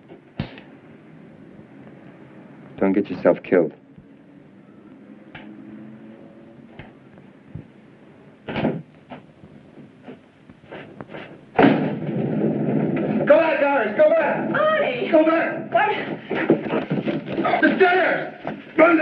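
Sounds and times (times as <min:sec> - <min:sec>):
door sounds: 0:08.4 - 0:09.3
struggle commotion: 0:13.2 - 0:19.0
people shouting: 0:14.0 - 0:16.5
knocks: 0:16.0 - 0:18.7.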